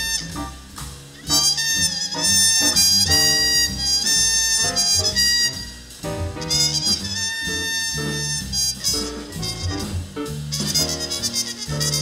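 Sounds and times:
drums: 0.0 - 12.0
muted trumpet jazz solo: 0.0 - 12.0
piano: 0.0 - 12.0
upright bass: 0.0 - 12.0.

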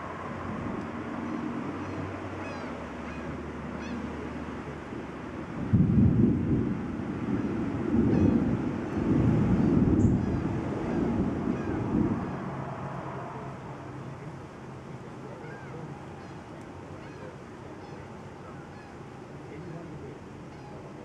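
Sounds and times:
wind buffeting microphone: 0.0 - 2.4, 3.2 - 17.6.

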